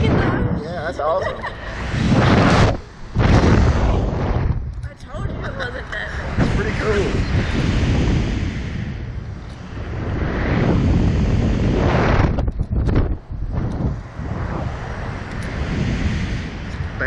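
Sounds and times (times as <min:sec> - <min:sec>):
wind rushing over microphone: 0:00.0 - 0:17.0.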